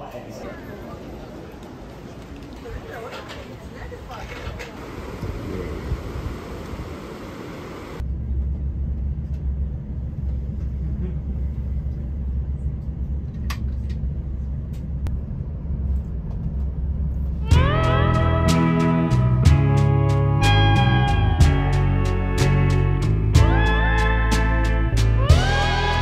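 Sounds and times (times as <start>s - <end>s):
train rumbling from inside carriage: 0.0s - 18.4s
acoustic guitar music: 17.4s - 26.0s.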